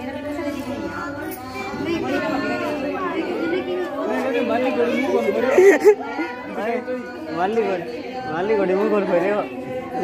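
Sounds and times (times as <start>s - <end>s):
overlapping chatter of people: 0.0s - 10.0s.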